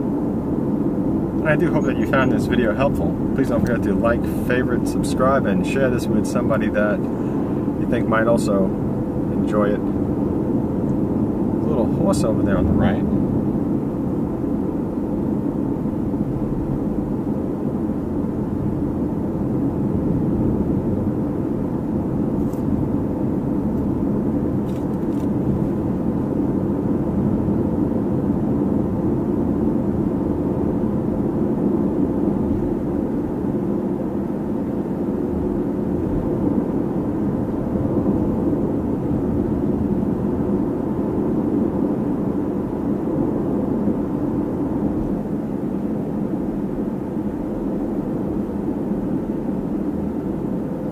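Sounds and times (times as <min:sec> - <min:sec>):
car driving interior drone: 0:00.0 - 0:50.9.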